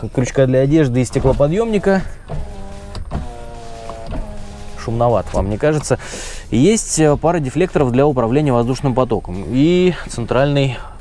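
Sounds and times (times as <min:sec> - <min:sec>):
power window motor whining: 0:00.9 - 0:06.3.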